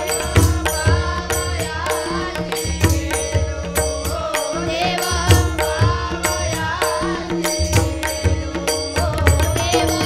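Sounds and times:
boy singing: 0.0 - 10.0.

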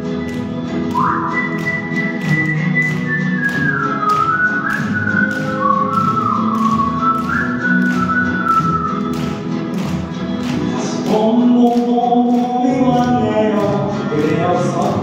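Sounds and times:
live band instrumental music: 0.0 - 15.0.

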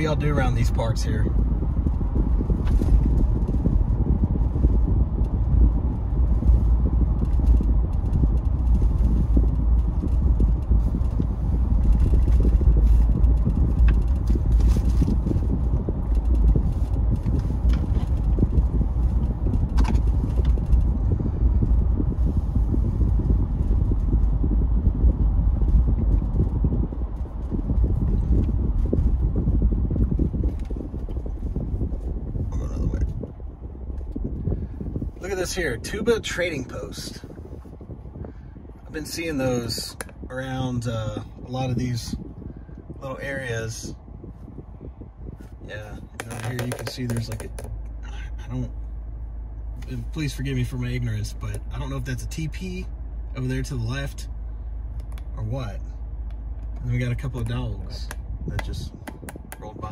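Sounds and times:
road and engine rumble in cabin: 0.0 - 59.9.

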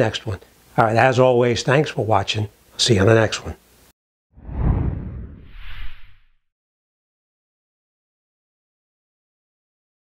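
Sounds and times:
deep rushing whoosh: 4.4 - 6.4.

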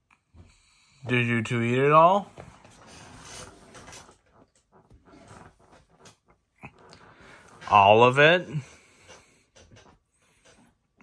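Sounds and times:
faint soft rustles: 0.4 - 10.8.

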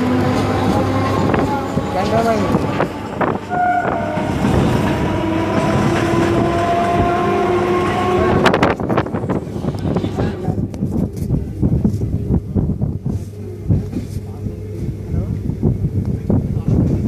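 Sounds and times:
train wheels rumbling on rails: 0.0 - 17.0
train whine: 0.0 - 17.0.

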